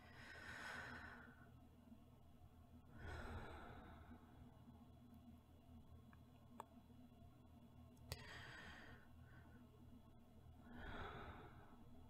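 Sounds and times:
woman breathing softly: 0.0s - 1.6s, 2.8s - 4.6s, 8.1s - 9.8s, 10.6s - 12.0s.

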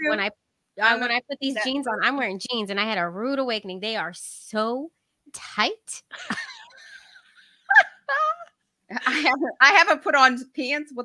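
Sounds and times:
women laughing: 6.1s - 9.4s.

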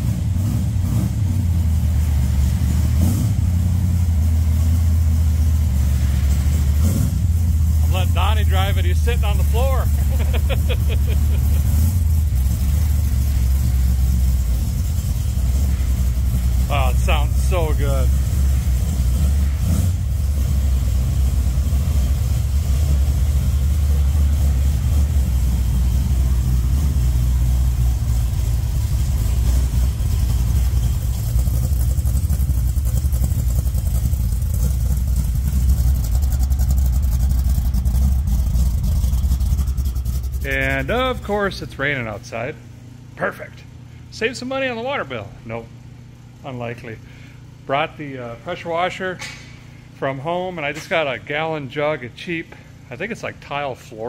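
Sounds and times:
car engine running steadily: 0.0s - 54.0s.

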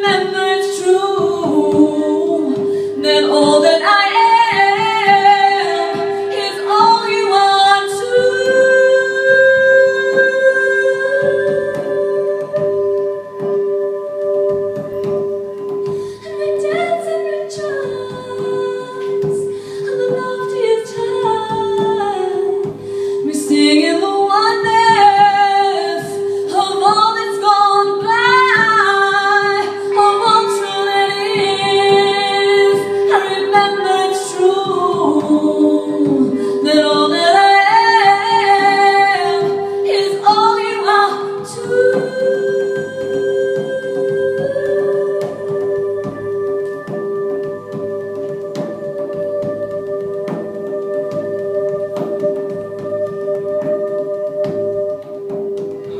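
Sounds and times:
woman singing slow melody: 0.0s - 55.9s.

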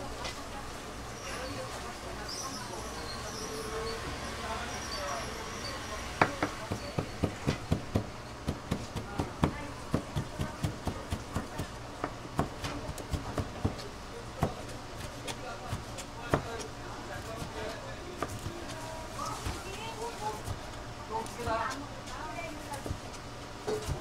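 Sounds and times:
knife chopping on plastic board: 6.2s - 13.8s, 15.3s - 16.7s.

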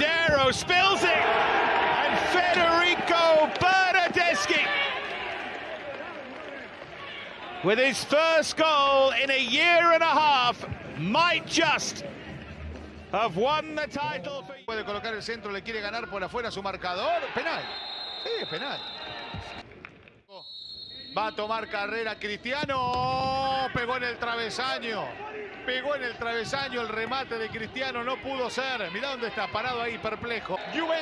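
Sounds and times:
man's voice: 0.0s - 1.3s, 2.0s - 4.7s, 7.6s - 12.0s
stadium crowd roar: 0.0s - 14.0s, 23.4s - 31.0s.

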